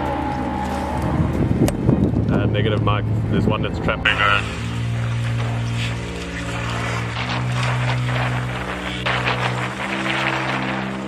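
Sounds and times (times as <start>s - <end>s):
music of sustained chords: 0.0s - 11.0s
outdoor hiss: 4.1s - 11.0s.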